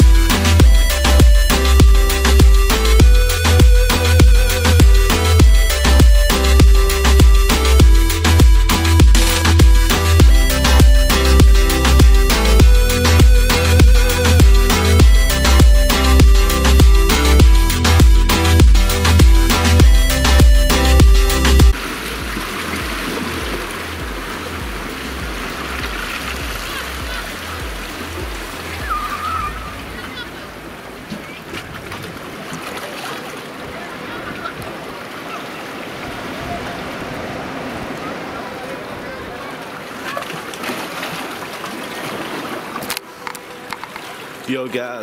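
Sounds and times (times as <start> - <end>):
faint bass beat music: 0.0 - 30.2
sea water rushing and splashing: 0.0 - 45.0
wind: 0.0 - 45.0
short warbling call: 28.7 - 30.3.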